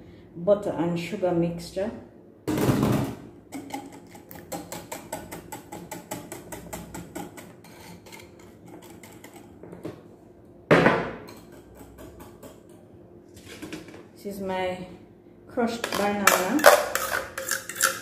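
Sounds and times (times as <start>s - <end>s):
whisk clicking against bowl: 3.6s - 9.5s.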